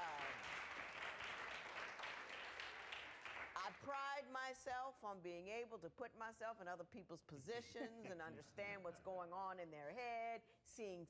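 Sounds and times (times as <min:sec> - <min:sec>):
audience applauding: 0:00.0 - 0:03.8.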